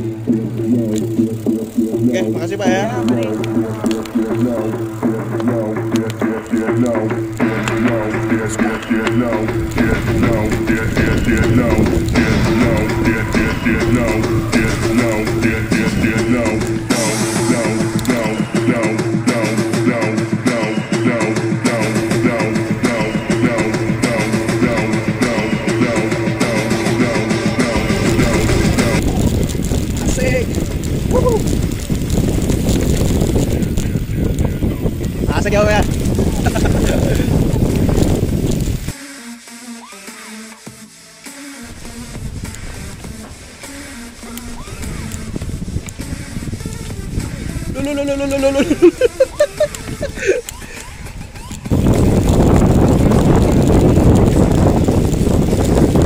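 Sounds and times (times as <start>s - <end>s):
bike rattling over dirt trail: 0.0s - 18.8s, 21.9s - 39.0s, 41.6s - 56.0s
wind buffeting microphone: 0.0s - 19.3s, 21.8s - 38.9s, 41.6s - 56.0s
voice calling: 0.0s - 29.0s, 47.7s - 51.7s
rock music with guitar: 0.0s - 29.2s.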